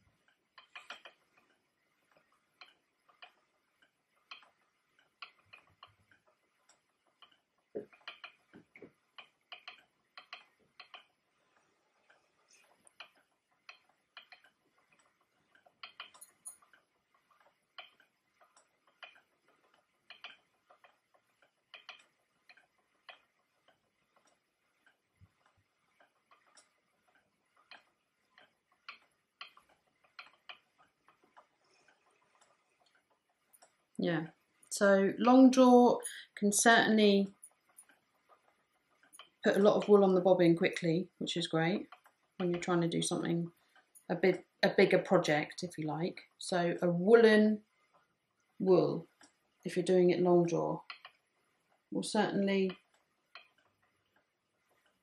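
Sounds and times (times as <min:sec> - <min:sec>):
spinning wheel mechanism clicking: 0:00.0 - 0:55.0.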